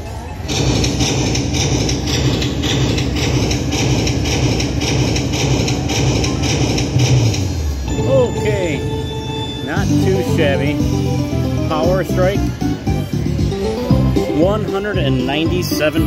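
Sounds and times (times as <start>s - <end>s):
slot machine chiming tones: 7.8s - 16.0s.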